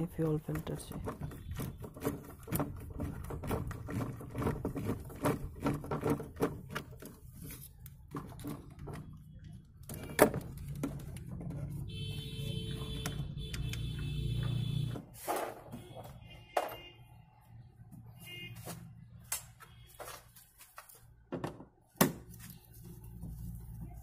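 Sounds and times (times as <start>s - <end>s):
clicks and knocks of engine parts: 0.0s - 17.0s.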